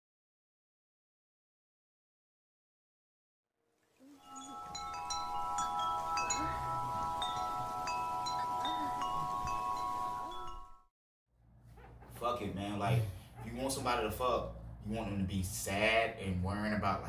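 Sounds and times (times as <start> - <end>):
wind chimes ringing: 4.1 - 10.9.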